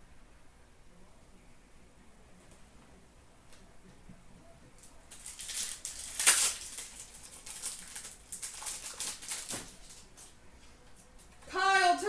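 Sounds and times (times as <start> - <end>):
card wrappers rustling and crinkling: 4.8 - 11.4.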